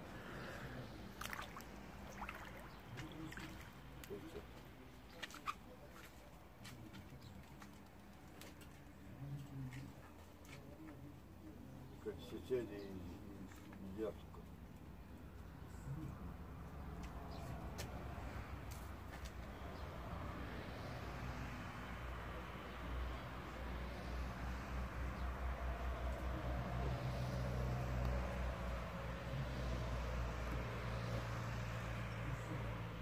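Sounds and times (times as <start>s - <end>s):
gentle water movement: 0.1s - 10.9s
short sharp splashes: 1.1s - 4.1s.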